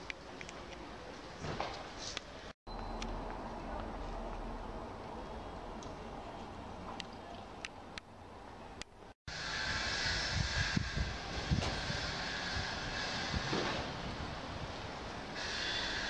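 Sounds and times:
street noise rush: 2.2 - 16.0.

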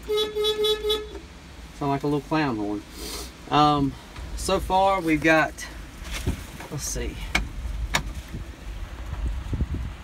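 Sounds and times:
small tractor horn toot: 0.0 - 1.2.

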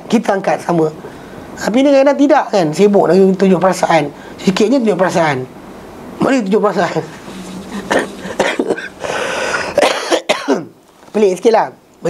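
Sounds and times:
man coughing: 7.6 - 10.7.

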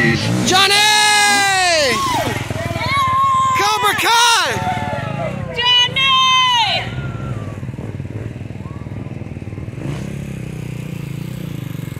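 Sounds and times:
dirt bike engine idling: 0.0 - 11.9.

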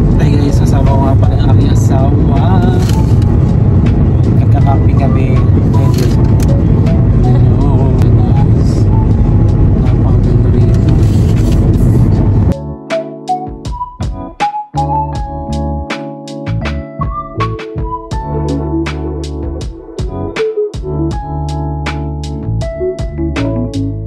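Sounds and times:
road and engine rumble: 0.0 - 12.6
people talking: 0.2 - 3.0, 4.4 - 6.2, 7.2 - 8.9, 9.8 - 12.0.

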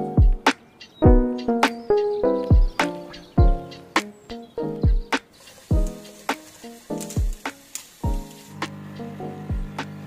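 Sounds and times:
lofi beat: 0.0 - 10.0
soft held chords: 0.0 - 10.0.

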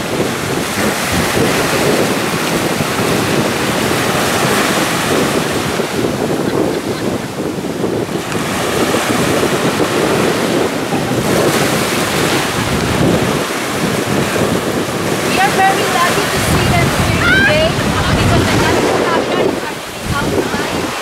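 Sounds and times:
small waves breaking on sand: 0.0 - 21.0
wind buffeting microphone: 0.0 - 21.0.

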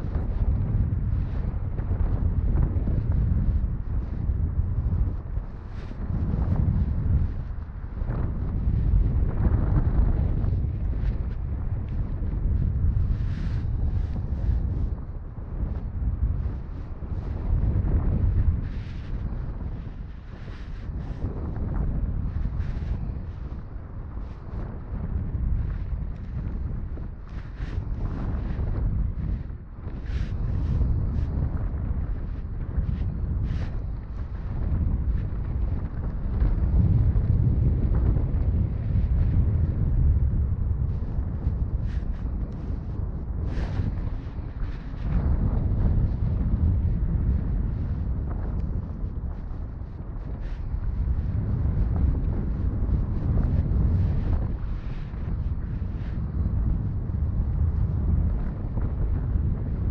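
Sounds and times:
fabric rubbing microphone: 0.0 - 59.9
wind buffeting microphone: 0.0 - 59.9.

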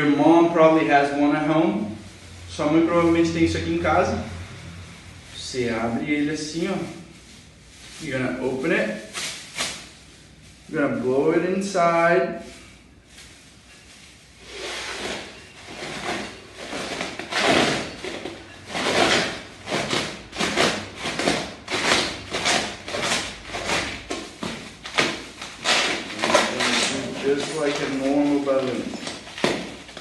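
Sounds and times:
person blowing into balloon: 14.4 - 18.0.

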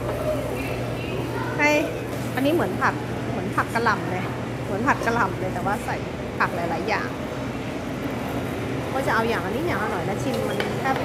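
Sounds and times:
restaurant background hum: 0.0 - 11.0.

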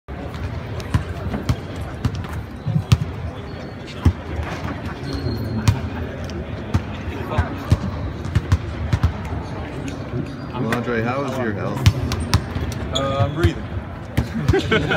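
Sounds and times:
background chatter: 0.1 - 14.9.

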